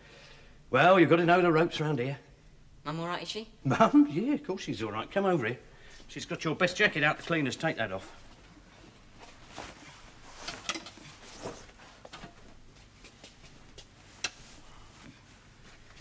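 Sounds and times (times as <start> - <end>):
clothing rustling: 7.2 - 16.0.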